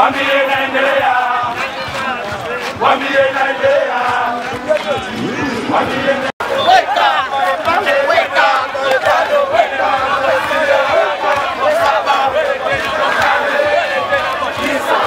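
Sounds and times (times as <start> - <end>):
crowd chanting and calling out: 0.0 - 15.0.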